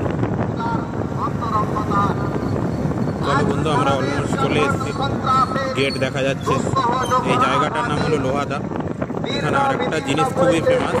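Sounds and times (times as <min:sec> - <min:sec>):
rumble of riding along street: 0:00.0 - 0:11.0
wind on microphone: 0:00.0 - 0:11.0.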